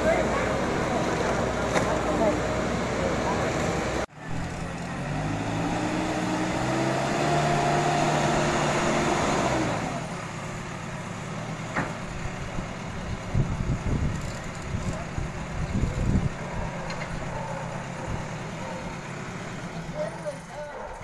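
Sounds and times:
diesel engine under load: 0.0s - 21.0s.

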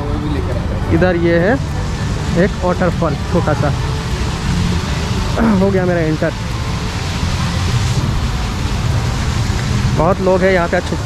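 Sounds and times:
low rumble: 0.0s - 11.0s
waterfall rushing and splashing: 0.0s - 11.0s.

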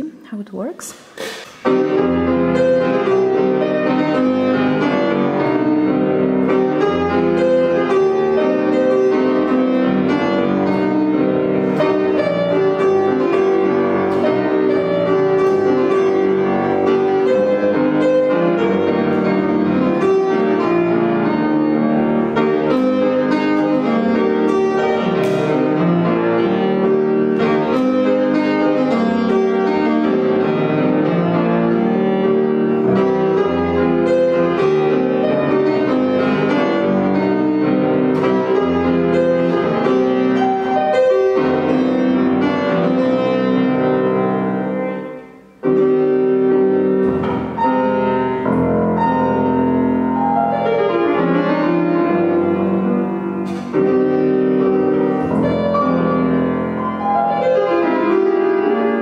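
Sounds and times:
fortepiano running notes: 1.6s - 59.0s.

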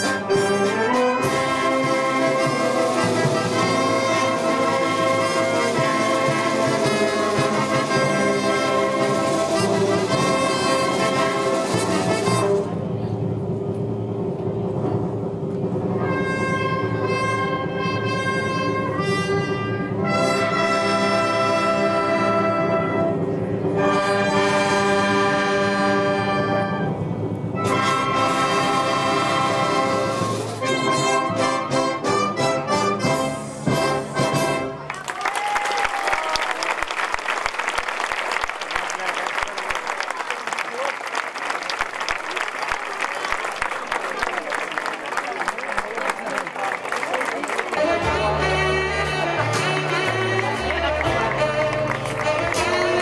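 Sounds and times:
wind band playing sustained chords: 0.0s - 34.9s, 46.4s - 53.0s.

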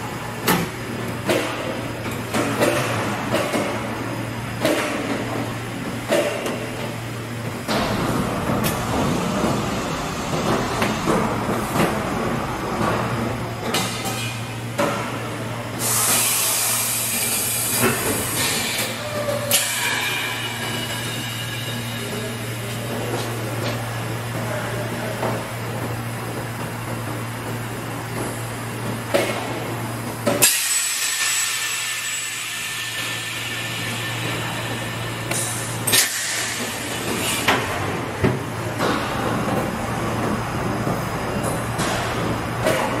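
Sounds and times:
compressed air hissing: 15.8s - 18.8s.

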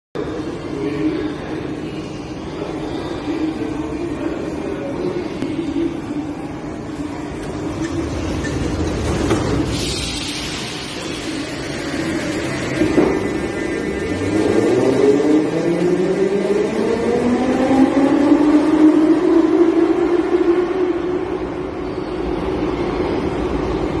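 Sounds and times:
metro train traction whine: 0.2s - 24.0s
wheels rumbling on rails: 7.2s - 20.4s.

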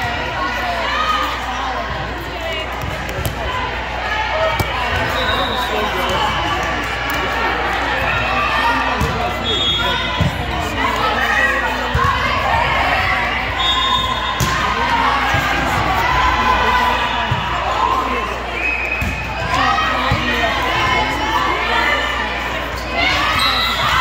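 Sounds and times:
people shouting and cheering: 0.0s - 24.0s.

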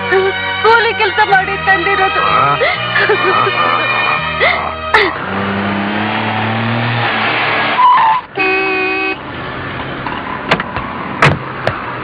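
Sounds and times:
car engine running: 0.1s - 12.0s
car horn: 0.7s - 5.5s, 7.7s - 9.3s.

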